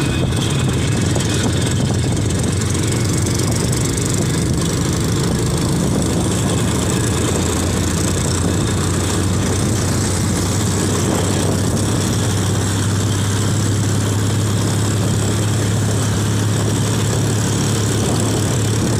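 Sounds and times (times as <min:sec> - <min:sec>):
motorcycle engine running: 0:00.0 - 0:18.9
road noise: 0:00.0 - 0:18.9.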